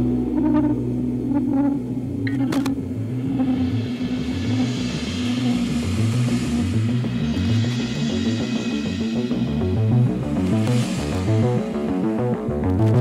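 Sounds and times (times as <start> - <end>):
psychedelic rock music: 0.0 - 13.0
sustained low bass: 0.0 - 13.0.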